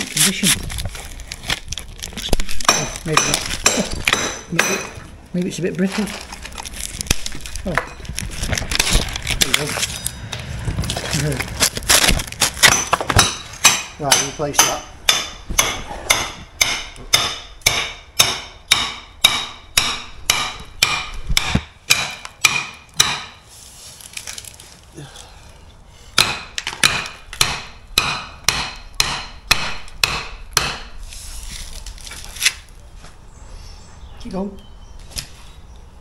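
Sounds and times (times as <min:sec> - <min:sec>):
hammer and chisel on brick: 0:02.6 - 0:05.0, 0:12.6 - 0:23.4, 0:26.2 - 0:31.0.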